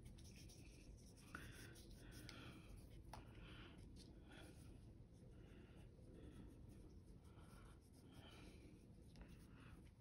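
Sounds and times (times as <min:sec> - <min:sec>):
paintbrush brushing on paper: 0:00.0 - 0:02.2
low room hum: 0:00.0 - 0:10.0.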